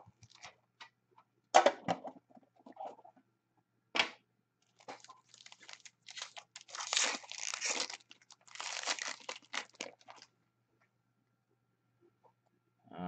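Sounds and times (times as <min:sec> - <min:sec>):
foil wrapper crackling: 0:04.6 - 0:10.3.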